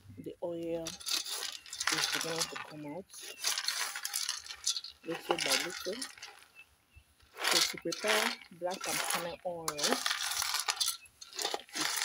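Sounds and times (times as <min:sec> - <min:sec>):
kernels rattling in metal pot: 0:00.8 - 0:06.4, 0:07.3 - 0:12.0.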